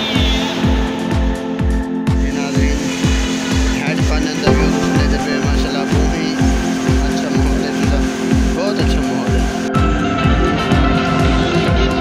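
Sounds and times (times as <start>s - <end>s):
deep bass thuds: 4.5s - 7.1s
low drone: 4.5s - 8.6s.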